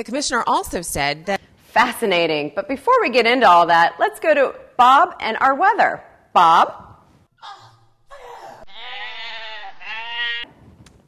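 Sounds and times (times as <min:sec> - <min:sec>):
animal bleating: 0:08.7 - 0:10.5.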